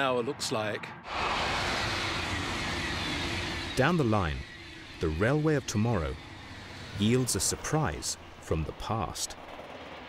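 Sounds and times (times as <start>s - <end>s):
high-speed train passing: 0.0s - 10.0s
faint falling whine: 1.1s - 9.2s.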